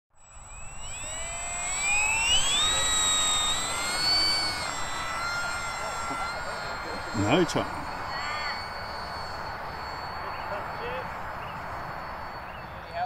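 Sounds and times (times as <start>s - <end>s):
electric motor and propeller whining: 0.1s - 13.0s.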